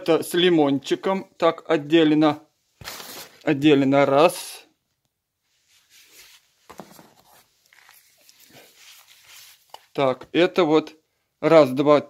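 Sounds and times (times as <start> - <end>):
paper and plastic rustling: 2.8 - 3.5, 5.7 - 10.0.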